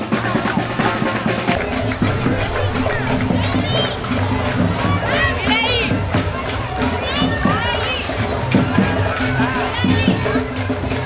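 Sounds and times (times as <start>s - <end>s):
children's voices: 0.0s - 11.0s
crowd noise: 0.0s - 11.0s.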